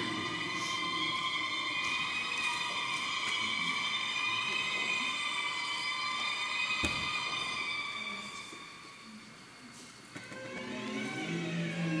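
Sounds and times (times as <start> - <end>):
high-pitched wavering drone: 0.0 - 9.4, 10.3 - 12.0.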